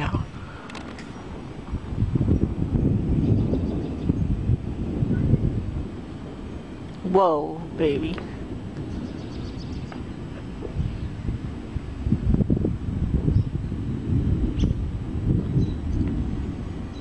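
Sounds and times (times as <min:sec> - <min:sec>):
rolling thunder rumble: 0:00.0 - 0:17.0.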